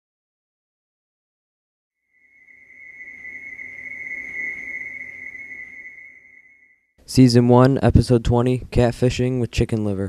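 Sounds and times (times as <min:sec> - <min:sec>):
high-pitched electronic tone: 0:02.2 - 0:06.8.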